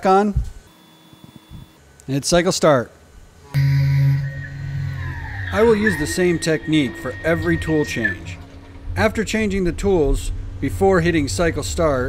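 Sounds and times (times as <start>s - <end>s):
mill electric hum: 3.0s - 12.0s
faint high whine: 3.4s - 12.0s.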